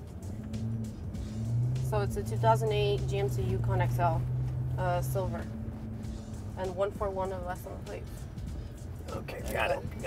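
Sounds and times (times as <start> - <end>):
background music: 0.0 - 10.0
truck engine hum inside cab: 0.0 - 10.0.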